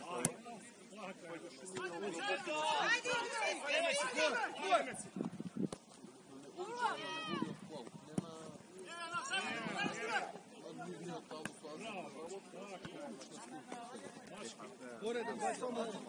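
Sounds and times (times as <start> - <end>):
voices calling and shouting: 0.0 - 16.0.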